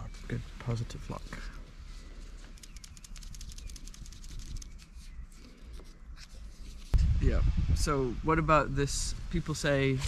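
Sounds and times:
low rumble: 0:07.0 - 0:09.3.

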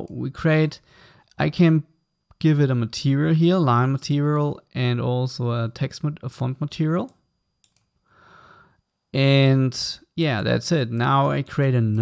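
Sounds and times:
soft breath: 0:00.8 - 0:01.3, 0:08.0 - 0:08.9.

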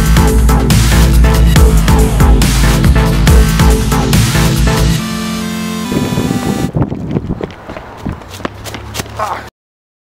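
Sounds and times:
hurried footsteps: 0:06.4 - 0:09.5
sharp clicks and scuffing: 0:06.7 - 0:09.5.

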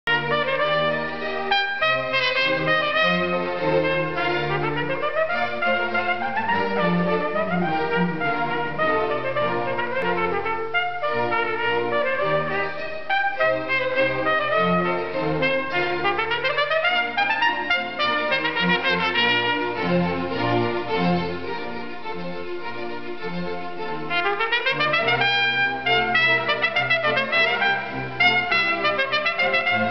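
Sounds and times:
trumpet solo: 0:00.0 - 0:21.6, 0:23.9 - 0:29.9.

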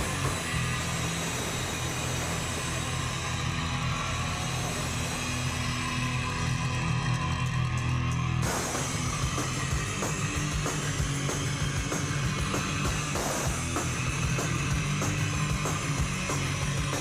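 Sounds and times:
distorted electric guitars: 0:00.0 - 0:17.0
punk rock band playing: 0:00.0 - 0:17.0.

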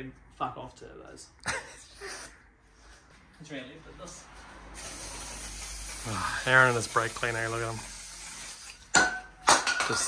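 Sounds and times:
aerosol can spraying: 0:04.7 - 0:08.9.

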